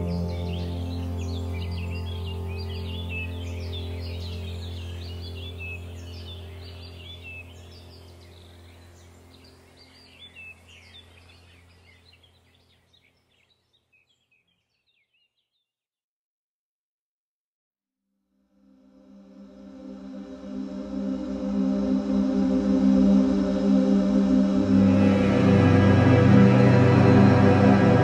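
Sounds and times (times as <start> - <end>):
low ambient drone: 0.0 - 13.0, 18.6 - 28.0
birds chirping: 0.0 - 15.6.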